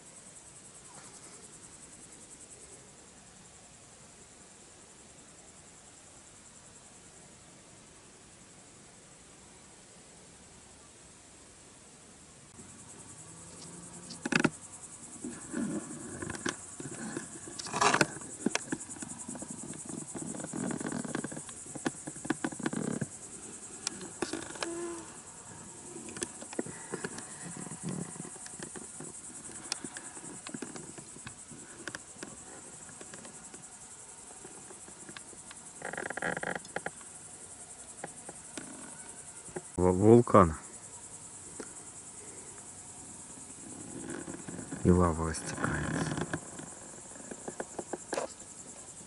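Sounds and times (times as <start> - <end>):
crickets chirping: 0.0 - 49.0.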